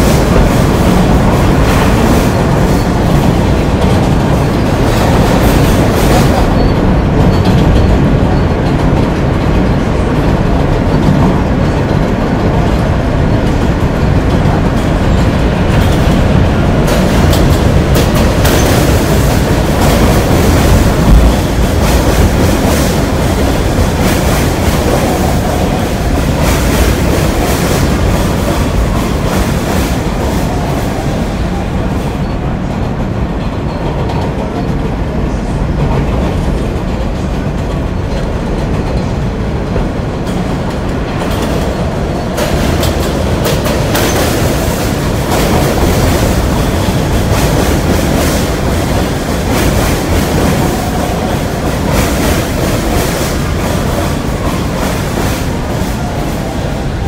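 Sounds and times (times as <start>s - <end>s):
train wheels on rails: 0.0s - 57.0s.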